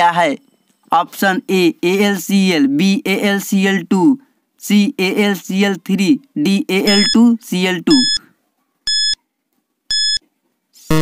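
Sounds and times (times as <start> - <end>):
short high-pitched electronic beeps: 6.9 - 7.2, 7.9 - 8.2.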